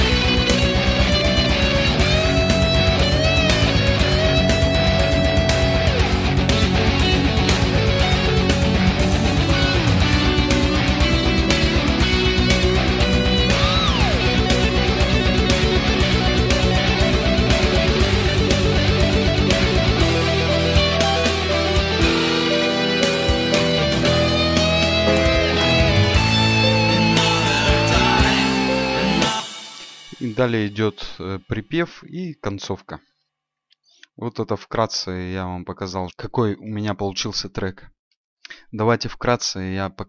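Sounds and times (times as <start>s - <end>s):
bass: 0.0s - 29.5s
lead guitar bending notes: 0.0s - 30.3s
distorted electric guitars: 0.0s - 30.8s
drums: 0.0s - 31.2s.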